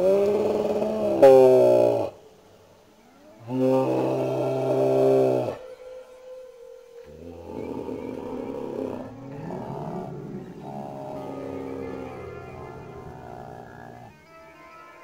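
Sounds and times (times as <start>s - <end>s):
person roaring groan: 3.5s - 5.6s, 7.1s - 14.1s.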